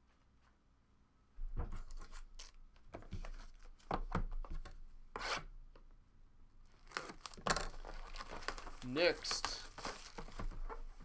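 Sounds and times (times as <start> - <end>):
blade slitting plastic wrap: 6.8 - 10.5.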